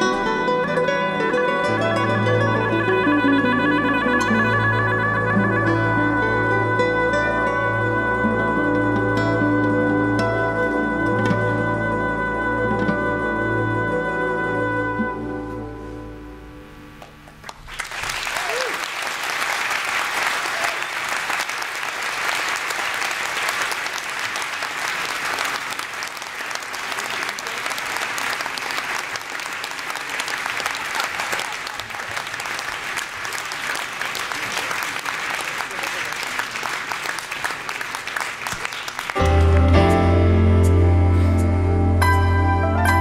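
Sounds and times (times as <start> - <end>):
band music with bass line: 0.0 - 16.8, 39.2 - 43.0
audience applauding: 17.0 - 40.1.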